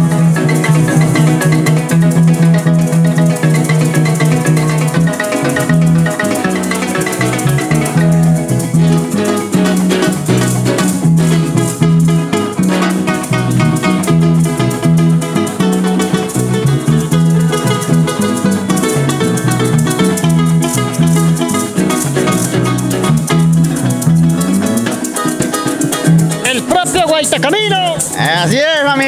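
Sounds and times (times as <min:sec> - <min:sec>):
electric bass line: 0:00.0 - 0:29.0
harp plucking fast melody: 0:00.0 - 0:29.0
maracas shaking: 0:00.0 - 0:29.0.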